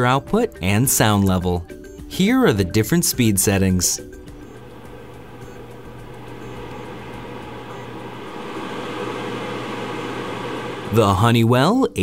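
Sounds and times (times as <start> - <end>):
humidifier fan humming: 4.2 - 11.6.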